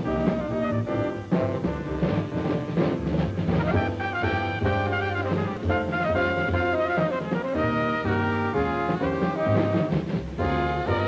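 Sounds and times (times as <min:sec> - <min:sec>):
drum kit with cymbals: 0:00.0 - 0:11.0
jazz band playing: 0:00.0 - 0:11.0
saxophone and trumpet lines: 0:00.0 - 0:11.0.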